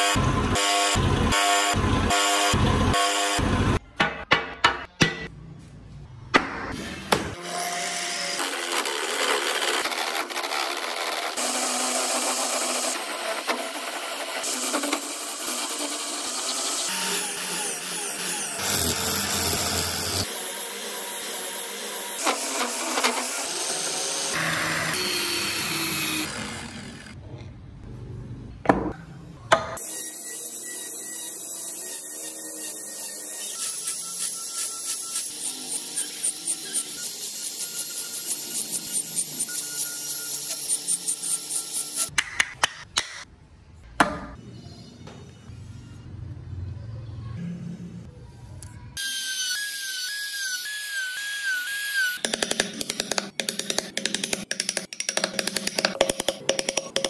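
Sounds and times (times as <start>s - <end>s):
chisel cutting spinning wood: 8.4s - 27.2s.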